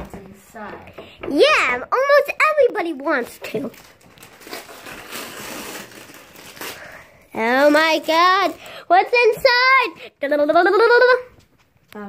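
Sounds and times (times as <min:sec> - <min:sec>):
wrapping paper tearing and crumpling: 0:02.6 - 0:09.0.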